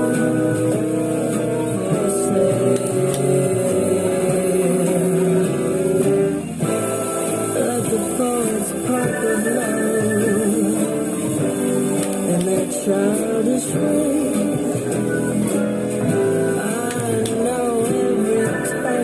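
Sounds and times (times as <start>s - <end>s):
guitar accompaniment: 0.0s - 19.0s.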